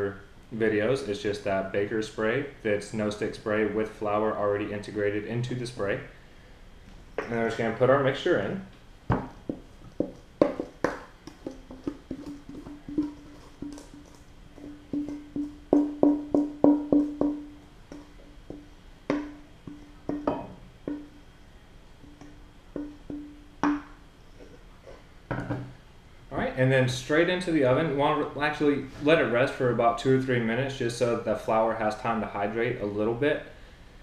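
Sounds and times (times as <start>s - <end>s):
metal bowl knocking on glass pan: 9.1s - 21.2s, 22.0s - 23.9s
metal bowl ringing tone: 19.1s - 21.2s.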